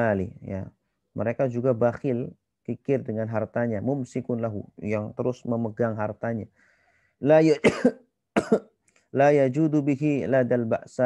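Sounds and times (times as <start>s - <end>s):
man coughing: 7.6s - 8.7s.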